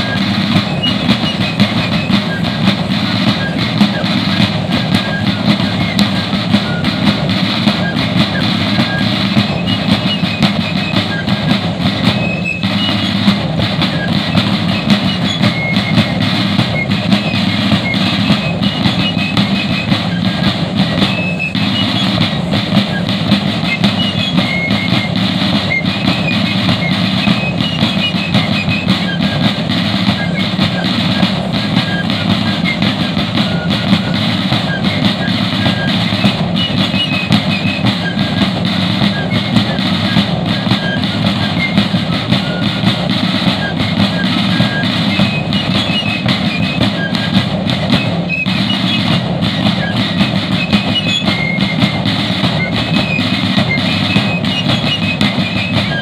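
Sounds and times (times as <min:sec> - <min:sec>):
rapid field drum beating: 0:00.0 - 0:56.0
shrill fifes melody: 0:00.0 - 0:56.0.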